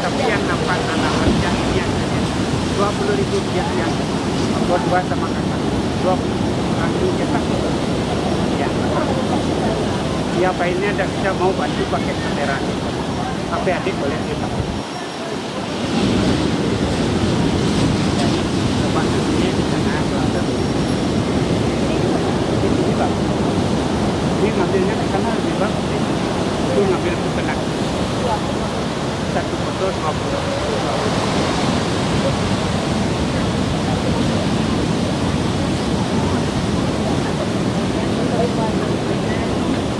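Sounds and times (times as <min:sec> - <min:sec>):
surf: 0:00.0 - 0:39.9
wind buffeting microphone: 0:00.0 - 0:39.9.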